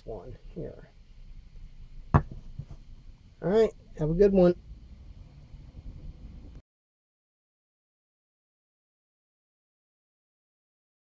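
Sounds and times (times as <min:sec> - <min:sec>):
hammer knocking on workbench: 0:02.1 - 0:02.8.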